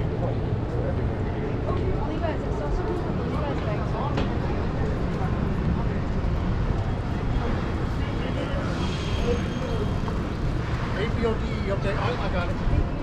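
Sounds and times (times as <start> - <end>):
traffic rumble: 0.0 - 13.0
voices of passers-by: 0.0 - 13.0.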